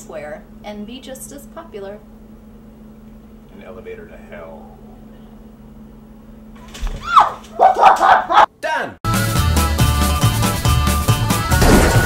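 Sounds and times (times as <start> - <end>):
person yelping and barking: 7.0 - 8.5.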